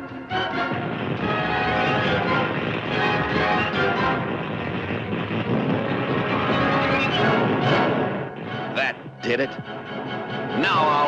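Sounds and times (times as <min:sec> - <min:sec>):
orchestral music: 0:00.0 - 0:11.0
electrical energy surging: 0:00.3 - 0:09.0.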